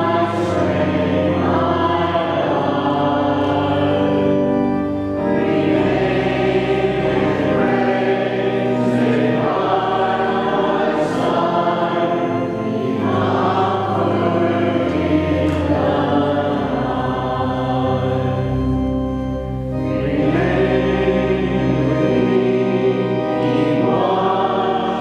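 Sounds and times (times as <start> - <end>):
congregation singing a hymn: 0.0 - 25.0
low steady accompaniment: 0.0 - 25.0.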